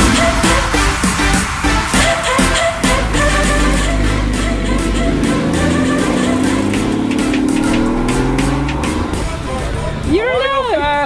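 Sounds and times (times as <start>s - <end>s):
background music with beat: 0.0s - 11.0s
car engine accelerating hard: 0.0s - 11.0s.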